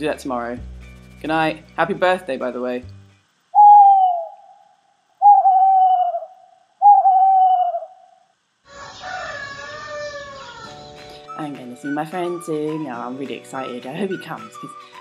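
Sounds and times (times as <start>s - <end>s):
owl hooting: 3.5s - 10.6s
rooster crowing: 8.7s - 10.4s.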